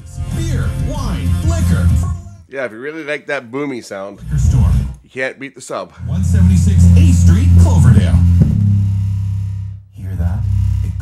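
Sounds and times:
music with boomy bass: 0.0 - 2.3, 6.0 - 11.0
person's voice over music: 6.0 - 8.5.

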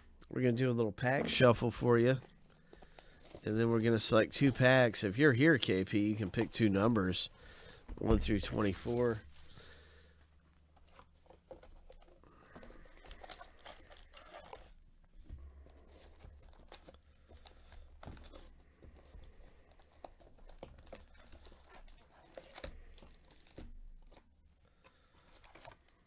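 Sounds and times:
foil packs tearing and crinkling: 12.4 - 14.8, 20.4 - 24.2
clicks and rustles: 16.0 - 26.0.

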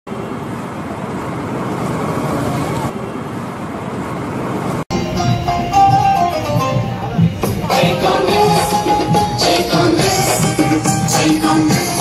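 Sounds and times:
road traffic: 0.0 - 12.0
indistinct voices: 6.5 - 12.0.

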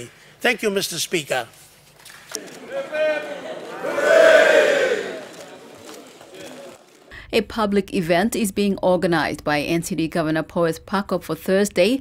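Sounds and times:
crowd cheering: 2.4 - 7.1.

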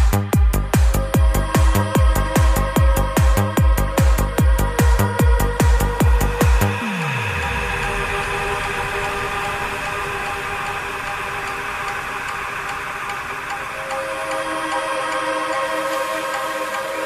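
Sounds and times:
ticking hi-hat: 0.0 - 6.8, 7.9 - 17.0
low falling sweep: 6.7 - 15.5
held synth pad chord: 6.7 - 17.0.

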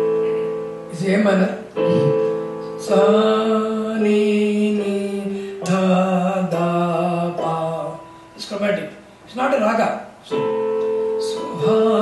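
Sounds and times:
electronic keyboard held notes: 0.0 - 9.0, 10.2 - 12.0.

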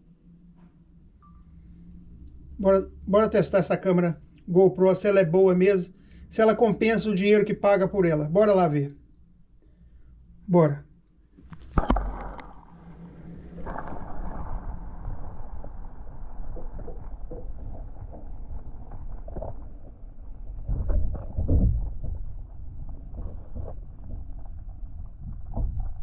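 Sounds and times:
muffled underwater sloshing: 11.4 - 26.0.

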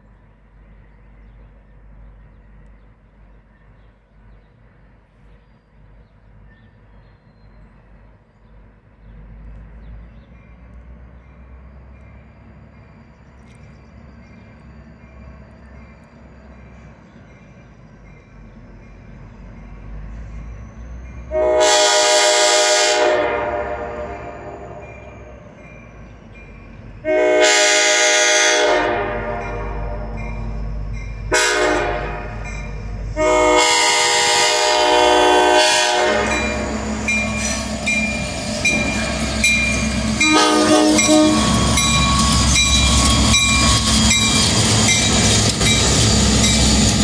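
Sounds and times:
diesel locomotive engine: 0.0 - 47.0
train wheels on rails: 0.0 - 47.0
locomotive air horn blasts: 21.3 - 24.8, 27.0 - 30.2, 31.3 - 37.0, 40.2 - 42.5.

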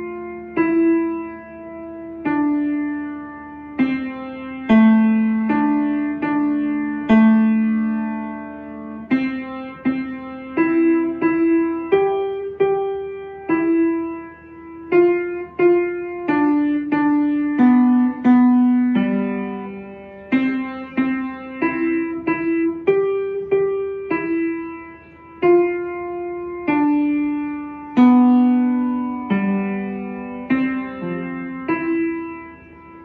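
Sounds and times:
upright piano melody: 0.0 - 33.0.

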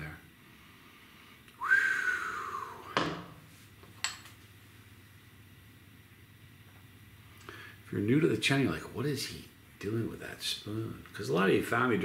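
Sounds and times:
man's whistled exhale: 1.6 - 3.0.

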